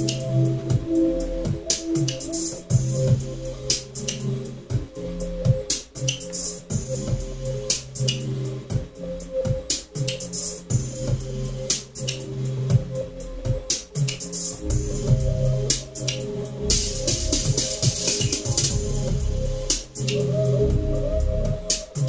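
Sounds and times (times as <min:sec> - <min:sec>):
drum-machine hits: 0:00.0 - 0:12.1, 0:12.7 - 0:20.9
repeating bass line: 0:14.6 - 0:19.8.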